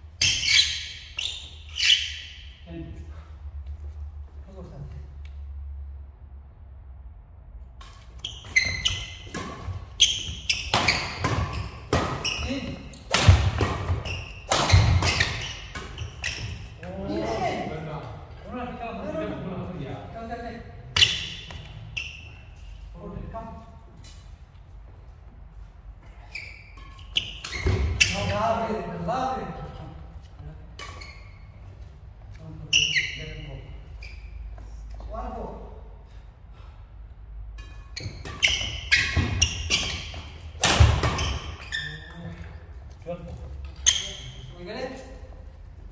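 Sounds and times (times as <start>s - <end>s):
racket striking shuttlecock: 10.4s - 12.2s, 12.9s - 16.2s, 40.6s - 41.2s
players' voices: 14.6s - 22.0s, 27.7s - 31.0s.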